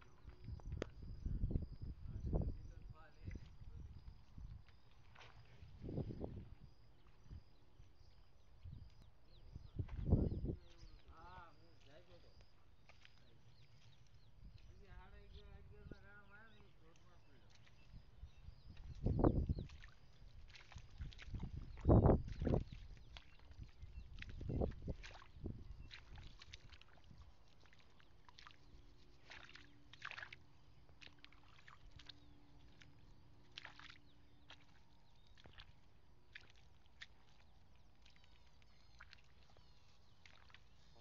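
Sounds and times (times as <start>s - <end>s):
footsteps squelching through mud: 0.0s - 15.1s, 16.6s - 41.0s.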